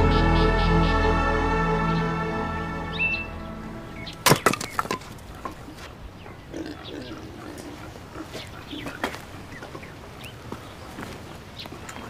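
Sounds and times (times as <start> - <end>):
background music: 0.0 - 4.6
axe chopping wood: 4.2 - 5.2
wood cracking apart: 4.2 - 5.4.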